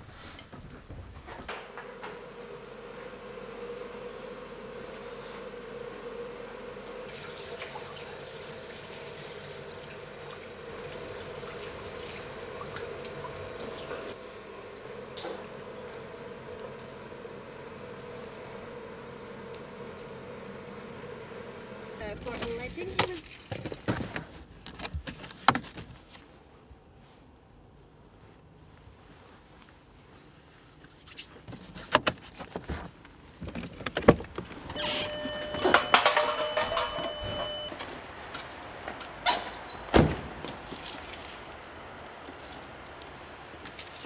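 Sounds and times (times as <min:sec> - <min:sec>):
steady hum: 0:00.0 - 0:07.1, 0:10.2 - 0:23.0.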